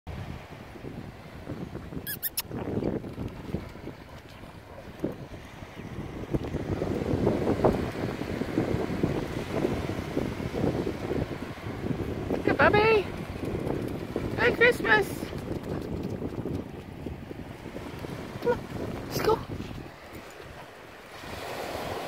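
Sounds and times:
small waves washing on sand: 0.1s - 22.0s
wind buffeting microphone: 0.1s - 22.0s
short high squeaks: 2.0s - 2.5s.

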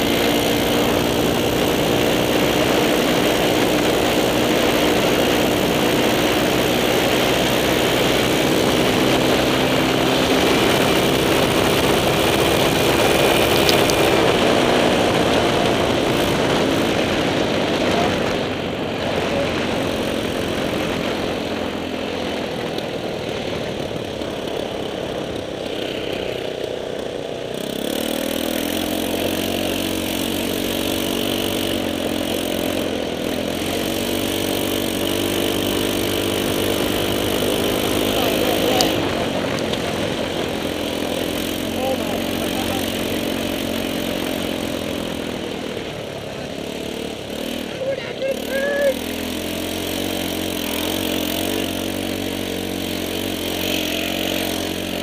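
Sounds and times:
go-kart engine running: 0.0s - 55.0s.

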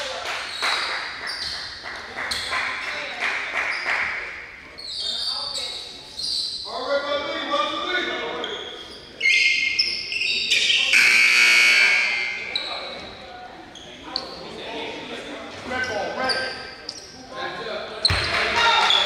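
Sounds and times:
voices in a hall: 0.0s - 19.0s
scoreboard horn blaring: 10.9s - 12.5s.

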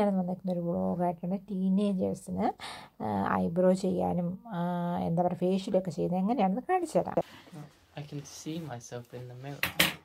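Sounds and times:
woman speaking: 0.0s - 7.7s.

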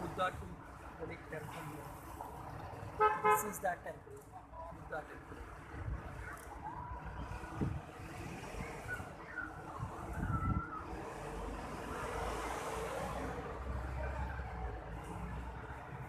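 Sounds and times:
road traffic rumble: 0.0s - 16.0s.

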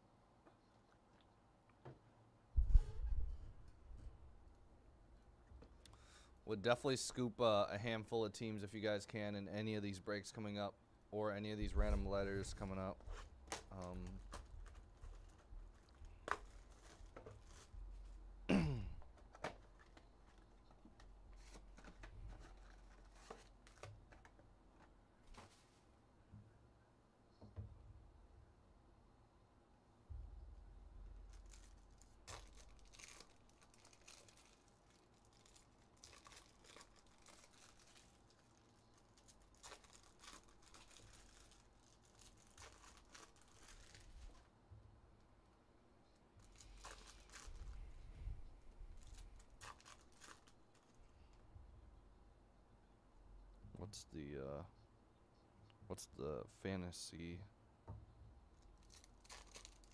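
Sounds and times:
foil wrappers crinkling: 11.9s - 18.3s, 19.2s - 24.4s, 31.1s - 44.5s, 46.4s - 48.0s, 48.8s - 51.4s, 58.6s - 59.9s
rustling of cardboard box: 11.9s - 18.3s, 19.2s - 24.2s.

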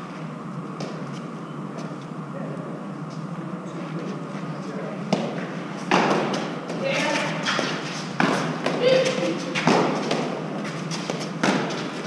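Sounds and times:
ball smacking off court walls: 5.1s - 10.4s, 11.1s - 11.9s.

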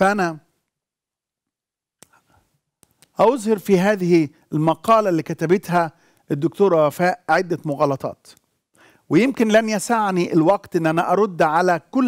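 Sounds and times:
soft breath: 8.7s - 9.1s.

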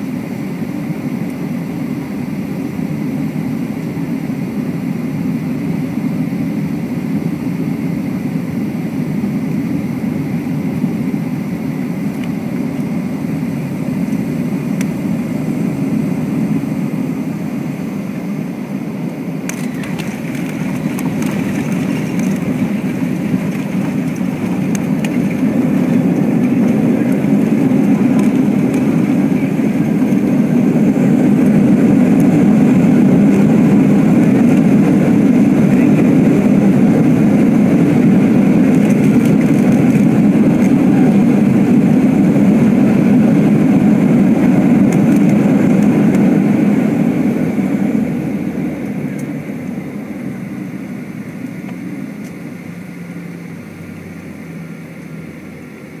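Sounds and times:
jet engines in reverse thrust: 0.0s - 56.0s.

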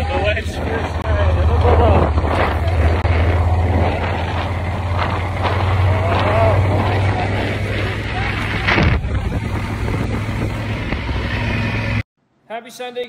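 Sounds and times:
wind rushing over microphone: 0.0s - 12.0s
motorcycle engine droning: 0.0s - 12.1s.

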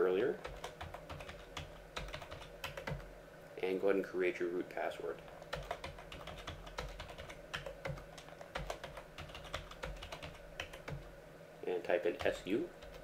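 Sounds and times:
computer keyboard typing: 0.4s - 3.1s, 5.3s - 11.1s, 12.2s - 13.0s.

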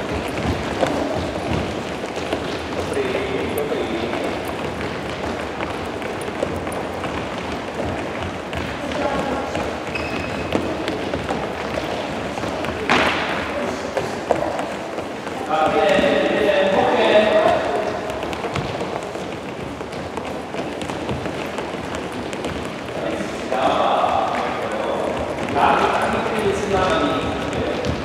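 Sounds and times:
children's footsteps on hall floor: 0.0s - 28.0s.

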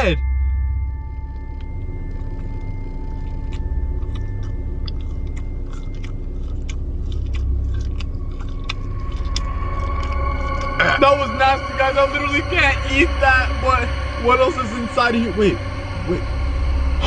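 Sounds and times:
low steady rumble: 0.0s - 17.0s
person chewing food: 1.2s - 10.8s
wet mouth clicks: 3.1s - 10.8s.

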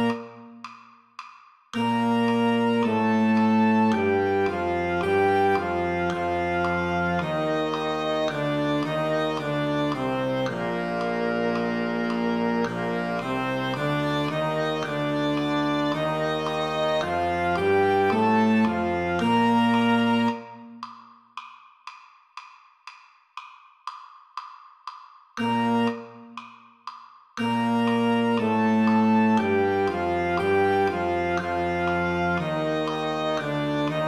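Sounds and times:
synthesized concert band melody: 1.8s - 20.4s, 27.4s - 34.0s.

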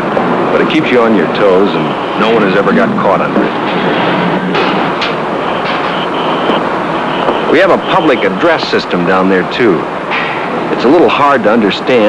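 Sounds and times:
electric warning bell ringing: 1.4s - 8.6s
machinery clatter: 2.2s - 7.5s.

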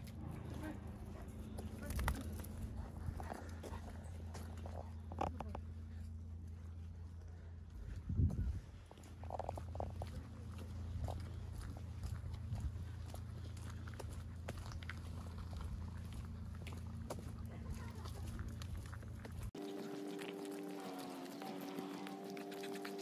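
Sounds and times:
small dog sounds: 19.5s - 23.0s.

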